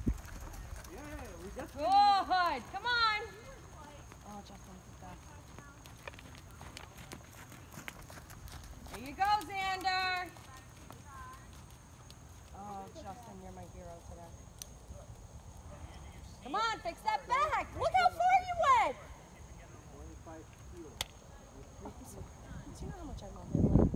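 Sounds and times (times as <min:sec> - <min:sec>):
wind rumble on microphone: 0:00.0 - 0:01.0, 0:22.1 - 0:23.9
horse hooves thudding on sand: 0:00.0 - 0:14.4
distant voices: 0:00.0 - 0:23.5.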